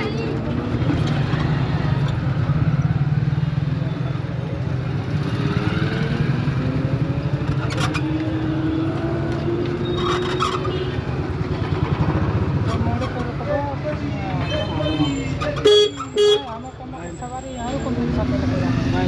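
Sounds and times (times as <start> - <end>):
voices of people passing: 0.0 - 19.0.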